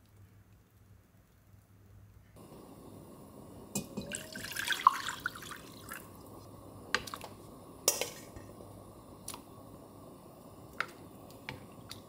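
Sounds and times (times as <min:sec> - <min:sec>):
liquid pouring and splashing: 0:03.8 - 0:06.3.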